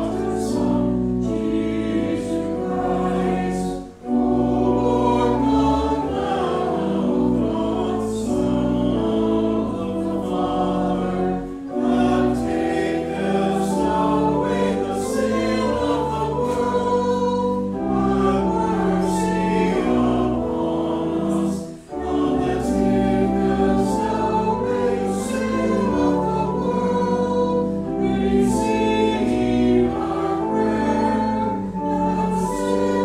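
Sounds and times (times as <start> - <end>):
choir singing: 0.0 - 33.0.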